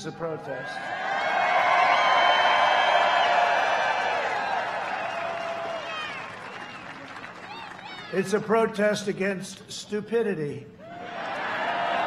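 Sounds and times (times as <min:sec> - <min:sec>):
crowd cheering and shouting: 0:00.5 - 0:08.4, 0:10.8 - 0:12.0.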